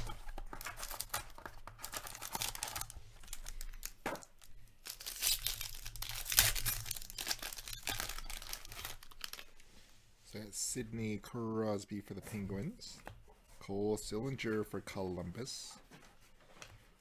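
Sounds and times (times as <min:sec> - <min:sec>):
foil wrapper tearing and crinkling: 0:00.0 - 0:04.0, 0:04.8 - 0:09.5.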